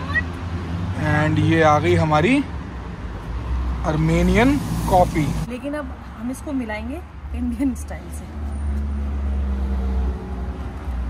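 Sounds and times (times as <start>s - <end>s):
street traffic rumble: 0.0s - 11.0s
vehicle engine humming: 0.0s - 11.0s.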